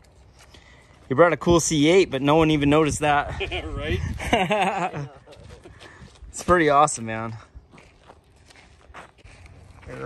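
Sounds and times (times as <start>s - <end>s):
footsteps on dirt and gravel: 0.0s - 1.6s, 5.0s - 10.0s.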